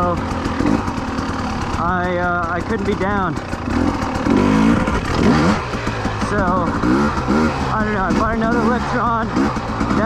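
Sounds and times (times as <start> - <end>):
man talking: 0.0 - 0.2, 1.7 - 3.4, 6.2 - 6.8, 7.6 - 10.0
motorcycle engine running: 0.0 - 10.0.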